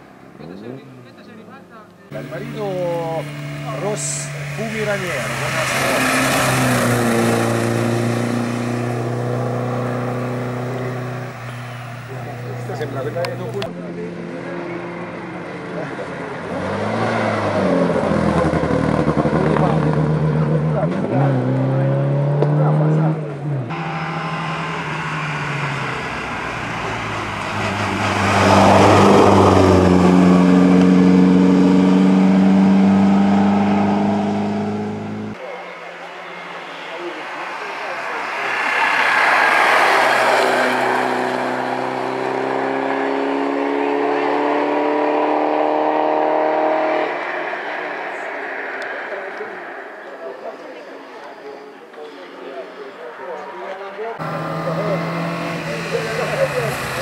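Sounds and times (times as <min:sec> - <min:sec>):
racing car engine accelerating: 0:02.1 - 0:35.5, 0:36.2 - 0:51.4, 0:54.2 - 0:57.0.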